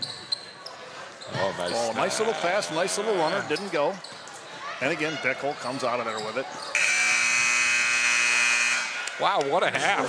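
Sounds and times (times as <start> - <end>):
scoreboard horn buzzing: 6.8 - 9.0.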